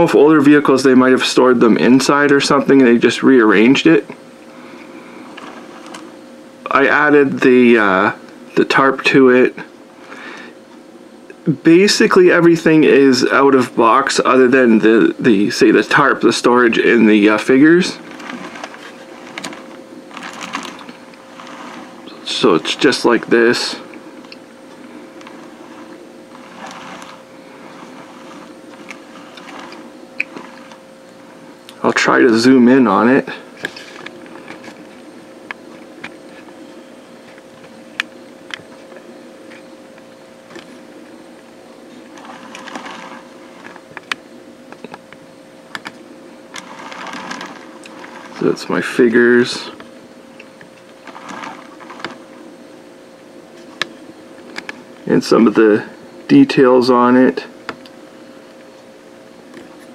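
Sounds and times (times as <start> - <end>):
small electric motor humming: 3.2 - 8.1, 12.9 - 56.2.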